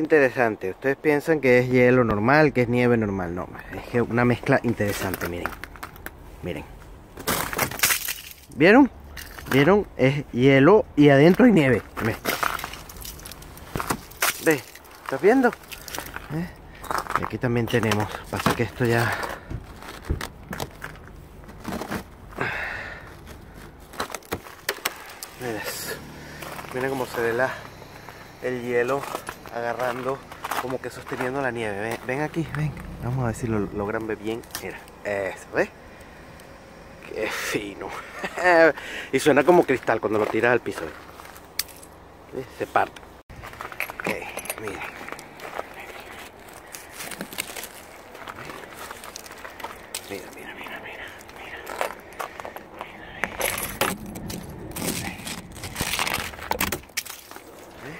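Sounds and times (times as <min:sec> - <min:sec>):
ice crust crunching and cracking: 0:03.8 - 0:09.7, 0:11.2 - 0:57.9.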